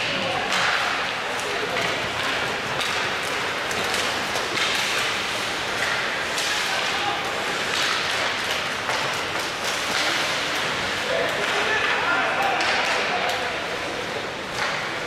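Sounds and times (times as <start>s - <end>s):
hockey sticks and puck clacking: 0.0s - 15.0s
indistinct spectators' voices: 0.0s - 15.0s
skates scraping ice: 0.4s - 15.0s.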